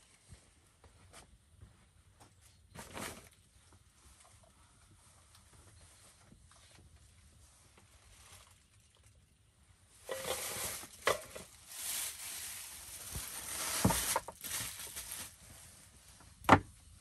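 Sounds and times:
cloth bag and plastic rustling: 0:07.8 - 0:09.2, 0:10.0 - 0:16.0.

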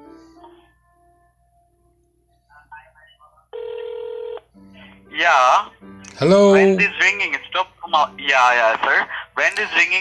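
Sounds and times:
telephone ringing tone: 0:03.5 - 0:04.5
man speaking: 0:05.2 - 0:07.4.

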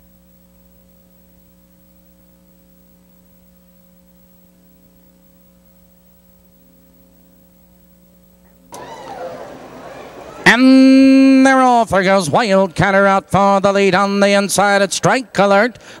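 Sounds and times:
electrical hum: 0:00.0 - 0:16.0.

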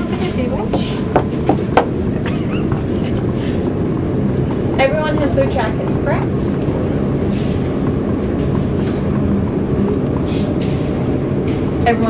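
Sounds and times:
elevator car rumbling: 0:00.0 - 0:12.0.

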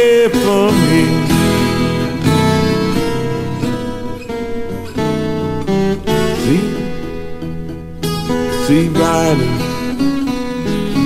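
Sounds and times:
acoustic guitar blues playing: 0:00.0 - 0:11.0.

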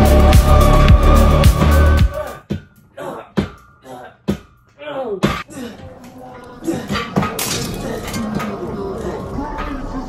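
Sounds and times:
film soundtrack music: 0:00.0 - 0:02.9.

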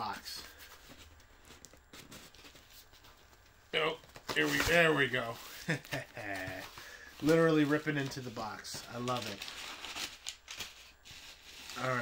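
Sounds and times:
cardboard box rustling: 0:00.7 - 0:10.0.

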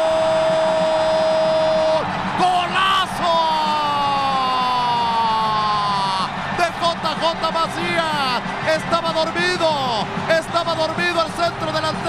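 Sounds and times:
stadium crowd noise: 0:00.0 - 0:12.0
commentator shouting goal: 0:01.7 - 0:12.0.

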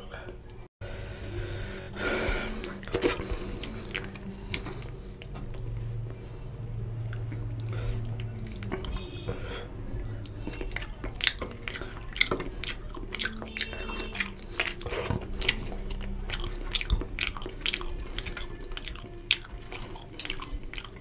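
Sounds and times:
wet chewing and lip smacking: 0:02.0 - 0:21.0
fingers squishing in curry: 0:07.0 - 0:21.0.

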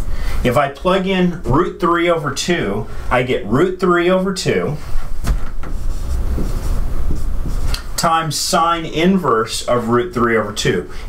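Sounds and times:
low rumble: 0:05.7 - 0:07.8.

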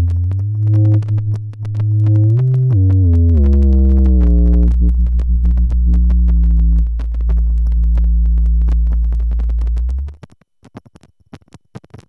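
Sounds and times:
low synthesizer note: 0:00.0 - 0:10.2
crackling static clicks: 0:00.0 - 0:12.0.

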